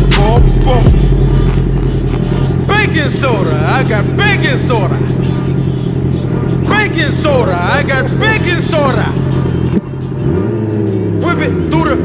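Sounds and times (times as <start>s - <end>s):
person rapping: 0.0s - 10.0s, 11.0s - 12.0s
motorcycle engine idling: 0.0s - 12.0s
rap music: 0.0s - 12.0s.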